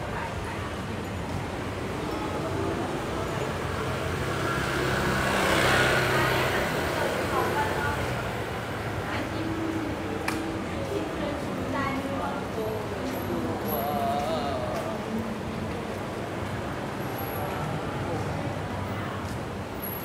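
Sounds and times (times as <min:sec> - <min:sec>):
motorbike passing: 0:01.4 - 0:19.2.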